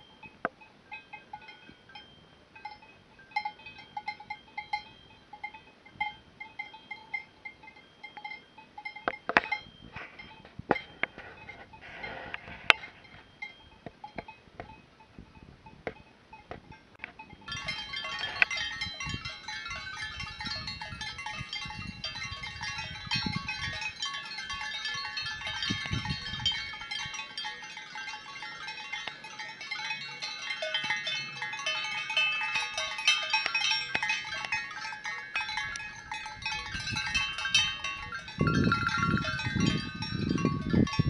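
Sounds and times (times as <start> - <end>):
sheep bells jangling: 0.0 - 14.9, 16.0 - 41.0.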